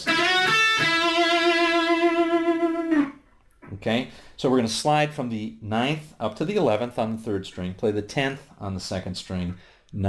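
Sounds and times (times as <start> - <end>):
electric guitar lead with vibrato: 0.0 - 3.2.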